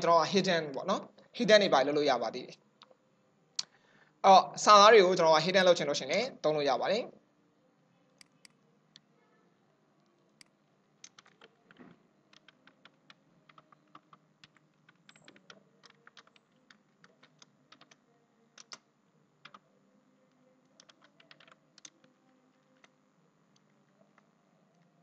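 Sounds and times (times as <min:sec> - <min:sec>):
faint typing on keyboard: 0:08.1 - 0:25.0.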